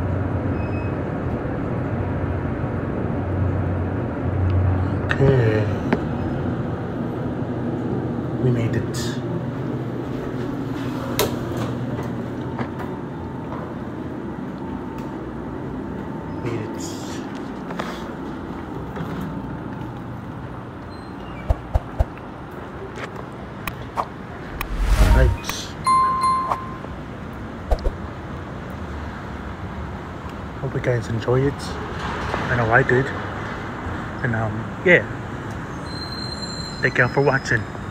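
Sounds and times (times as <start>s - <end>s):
short electronic beep: 24.6s - 26.9s.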